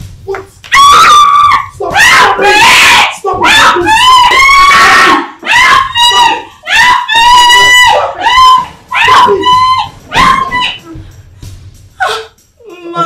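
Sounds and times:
woman screaming: 0:00.7 - 0:10.9.

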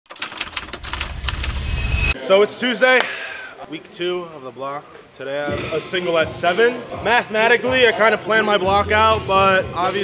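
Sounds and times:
low rumble: 0:00.8 - 0:02.2.

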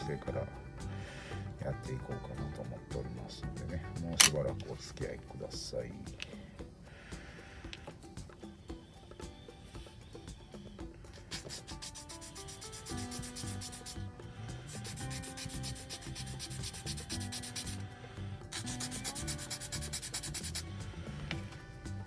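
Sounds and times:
background music: 0:00.0 - 0:22.0
sanding stick rubbing plastic: 0:11.2 - 0:17.8, 0:18.5 - 0:20.7.

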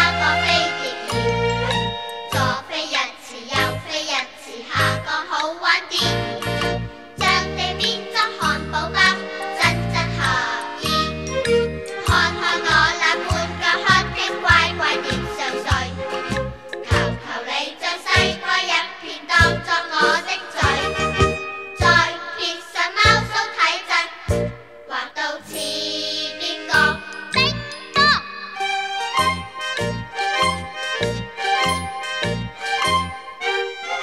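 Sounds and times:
children's choir singing: 0:00.0 - 0:06.5, 0:07.2 - 0:11.1, 0:12.0 - 0:29.6
pop backing track with chimes: 0:00.1 - 0:02.7, 0:07.8 - 0:13.4, 0:20.6 - 0:23.4, 0:25.5 - 0:33.6
bell-like chimes: 0:21.2 - 0:22.6, 0:25.5 - 0:31.0, 0:31.6 - 0:33.3.

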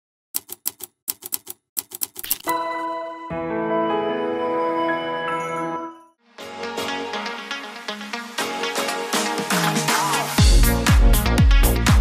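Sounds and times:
typewriter key clacks: 0:00.4 - 0:02.5.

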